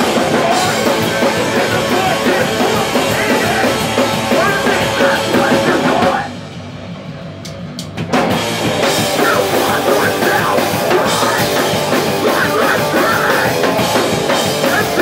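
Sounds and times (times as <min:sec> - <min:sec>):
punk band playing: 0:00.0 - 0:15.0.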